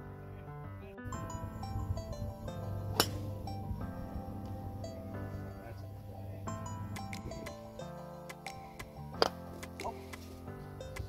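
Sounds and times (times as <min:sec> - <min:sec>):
background music with ticking beat: 0:01.1 - 0:11.0
golf club striking ball: 0:02.7 - 0:07.6, 0:08.3 - 0:10.4.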